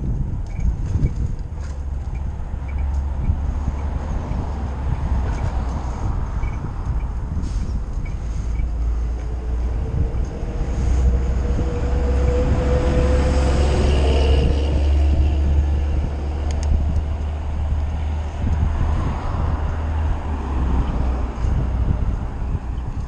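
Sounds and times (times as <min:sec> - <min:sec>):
road noise: 0:00.0 - 0:23.0
wind rumble: 0:00.0 - 0:23.0.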